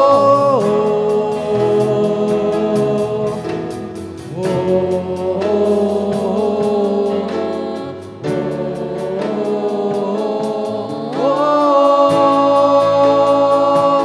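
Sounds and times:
steady drum beat: 0.0s - 14.0s
voices singing held refrain: 0.0s - 14.0s
worship band playing: 0.0s - 14.0s.

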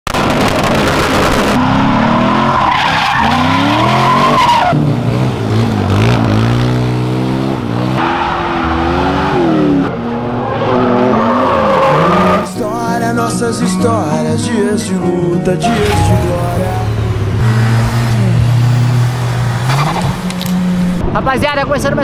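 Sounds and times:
engines revving hard: 0.2s - 12.5s, 15.7s - 21.0s
tyre squeal: 2.1s - 4.8s.

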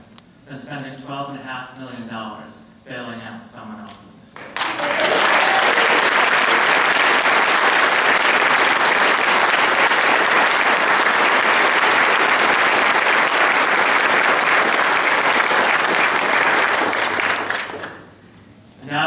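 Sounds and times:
audience clapping: 4.4s - 18.2s.

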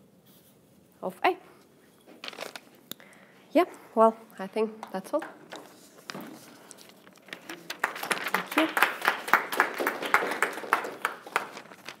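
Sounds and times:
small audience clapping: 7.2s - 12.0s.

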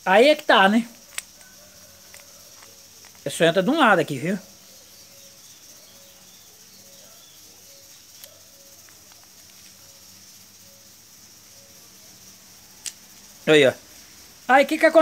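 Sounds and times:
faint steady hiss: 0.0s - 15.0s
metal parts clicking: 0.3s - 3.6s, 8.1s - 9.8s.

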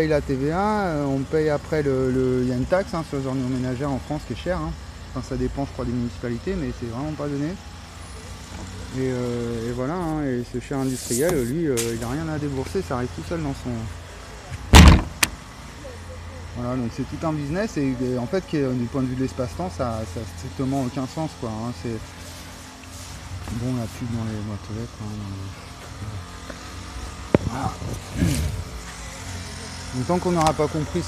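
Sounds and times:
vehicle engine humming: 0.0s - 31.0s
plastic bin lid banging shut: 14.7s - 15.4s.

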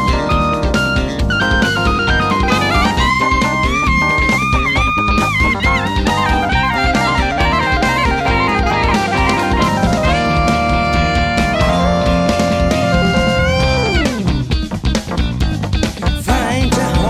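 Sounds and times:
saxophone lead: 0.0s - 14.6s
drum kit beat: 0.0s - 17.0s
keyboards: 0.0s - 17.0s.

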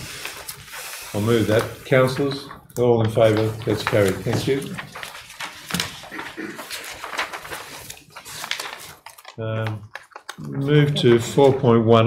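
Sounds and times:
paper rustling and pages turning: 0.0s - 11.7s.

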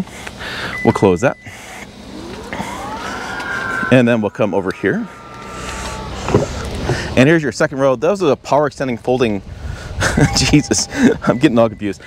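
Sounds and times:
liftgate motor whining: 0.6s - 7.2s.

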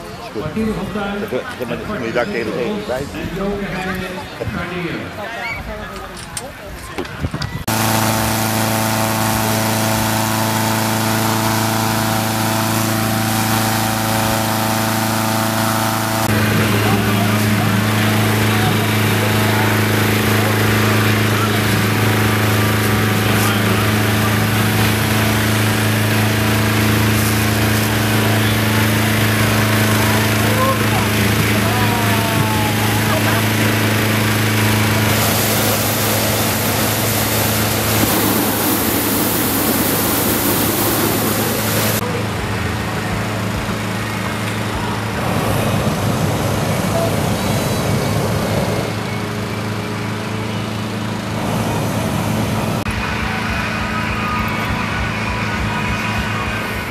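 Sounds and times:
engine-driven fan running: 7.4s - 56.9s.

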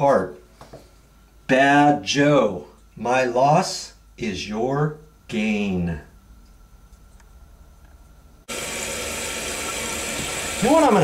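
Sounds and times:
toilet flushing: 8.5s - 11.0s.

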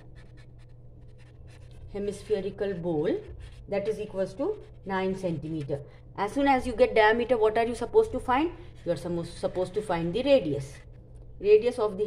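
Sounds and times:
marker writing on paper: 0.0s - 1.9s, 3.0s - 4.0s
low steady hum: 0.0s - 12.0s.

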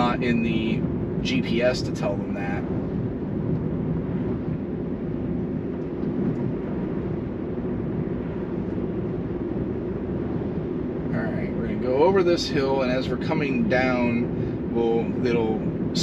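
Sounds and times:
road and tyre rumble in car: 0.0s - 16.0s.

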